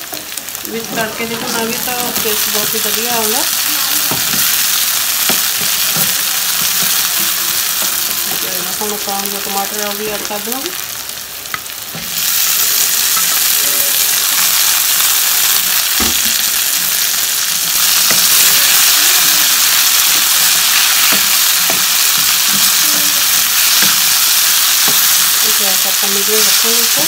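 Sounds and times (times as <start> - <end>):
tomatoes sizzling in hot oil: 0.0 - 27.0.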